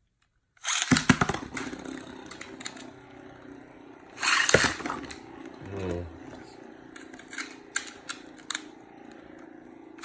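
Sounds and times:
spinning top launched rasping whir: 0.6s - 10.0s
spinning top whirring: 0.6s - 10.0s.

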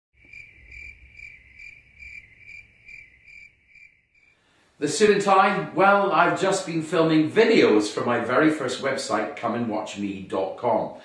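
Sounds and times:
cricket chirping: 0.2s - 4.4s.

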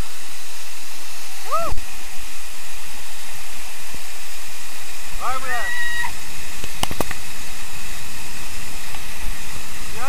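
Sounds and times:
waterfall rushing: 0.0s - 10.0s.

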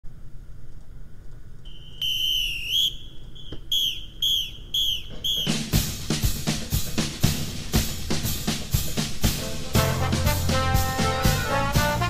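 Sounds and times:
high whistle tones: 1.7s - 6.0s
drum beat: 4.8s - 12.0s.

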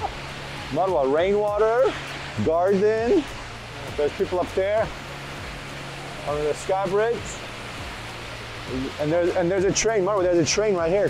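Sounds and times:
low steady hum: 0.0s - 10.7s
indoor waterfall rushing: 0.0s - 11.0s.

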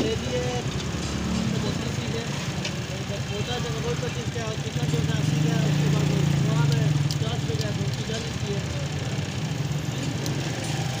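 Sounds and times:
small engine humming: 0.3s - 11.0s.

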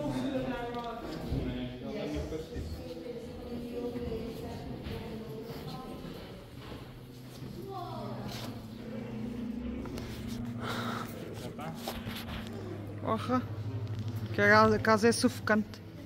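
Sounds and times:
low steady hum: 3.4s - 16.0s.

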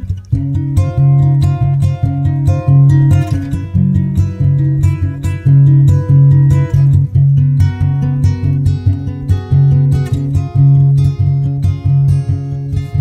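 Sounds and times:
acoustic guitar background music: 0.0s - 13.0s.

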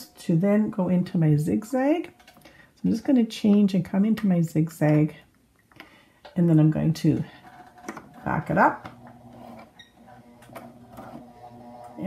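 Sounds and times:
sewing machine running: 7.4s - 12.0s.

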